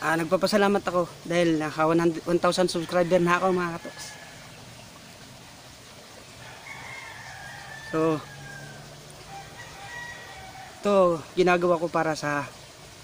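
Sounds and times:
faint rooster crowing: 6.4 - 11.1.

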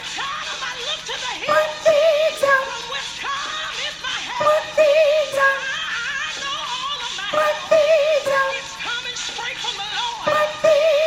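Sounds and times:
gospel choir music: 0.0 - 9.4, 10.1 - 11.0
woman singing soprano with vibrato: 0.0 - 11.0.

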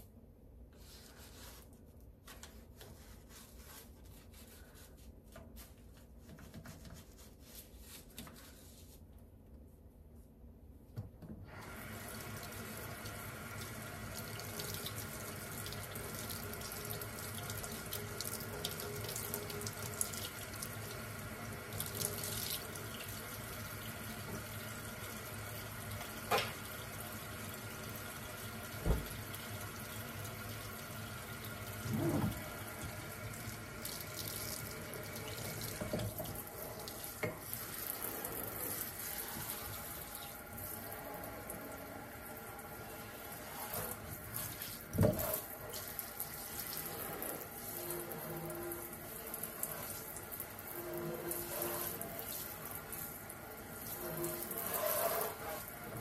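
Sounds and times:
water running into steel sink: 11.5 - 56.0.

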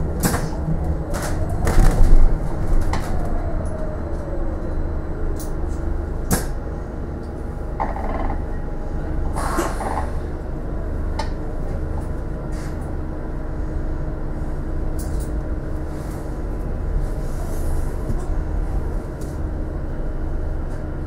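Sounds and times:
bus engine and road rumble: 0.0 - 21.0.

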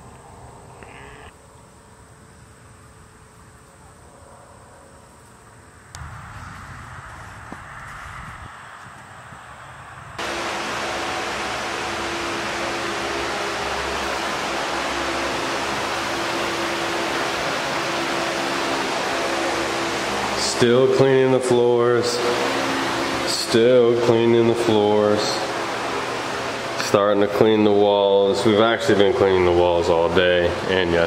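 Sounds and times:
electric blower rushing air: 6.0 - 31.0.

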